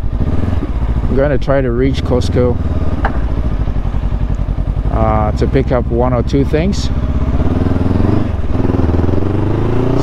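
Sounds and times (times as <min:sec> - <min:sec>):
motorcycle engine accelerating: 0:00.0 - 0:10.0.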